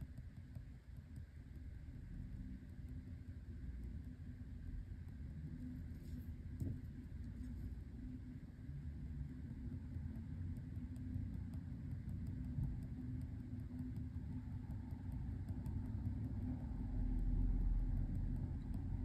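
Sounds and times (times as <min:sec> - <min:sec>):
low background rumble and hum: 0:00.0 - 0:19.0.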